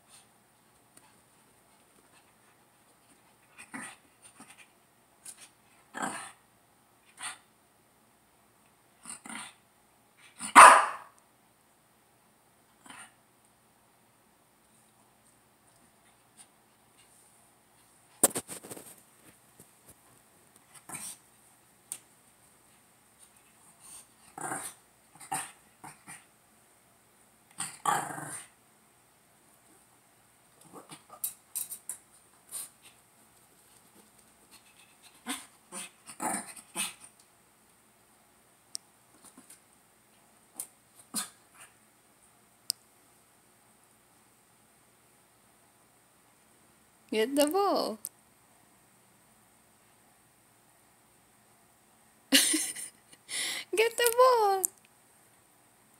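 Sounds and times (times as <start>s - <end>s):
dog barking: 10.5s - 11.2s
dog growling: 27.6s - 28.5s, 35.2s - 37.1s.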